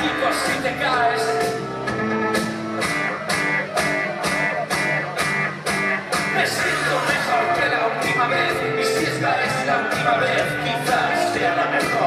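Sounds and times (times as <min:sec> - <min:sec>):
live rock band playing: 0:00.0 - 0:12.0
steady drum beat: 0:00.0 - 0:12.0.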